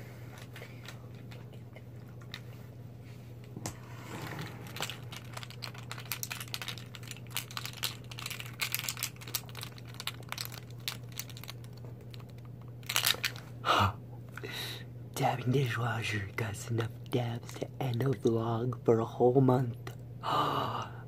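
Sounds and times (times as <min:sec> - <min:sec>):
steady low hum: 0:00.0 - 0:21.0
plastic containers clicking and crinkling: 0:04.7 - 0:13.4.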